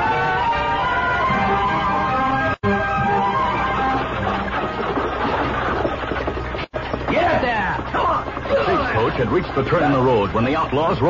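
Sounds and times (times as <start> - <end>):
music bridge: 0.0 - 7.0
horses galloping: 0.0 - 11.0.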